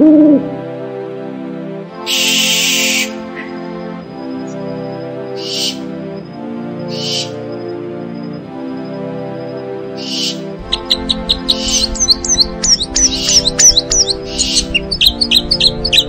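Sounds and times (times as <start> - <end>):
sustained background music chords: 0.0 - 16.0.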